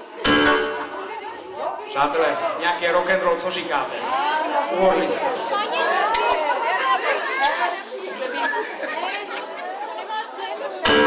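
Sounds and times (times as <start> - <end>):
loud music: 0.2 - 1.1.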